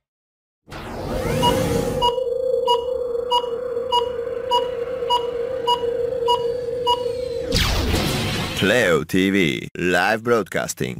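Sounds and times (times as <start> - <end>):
rising sweep: 0.7 - 8.5
steady electronic tone: 0.7 - 8.6.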